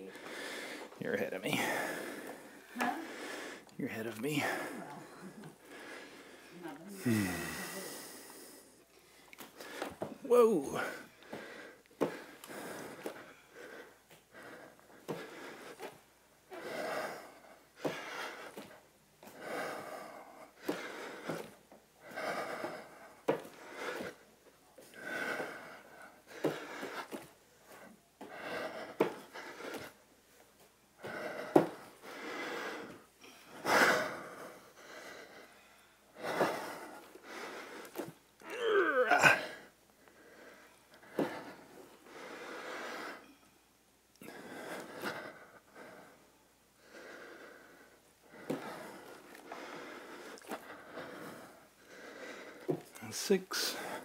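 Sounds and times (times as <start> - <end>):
heavy exhalations and panting: 0.0 - 43.4, 44.2 - 54.0
strained groan: 38.4 - 39.7.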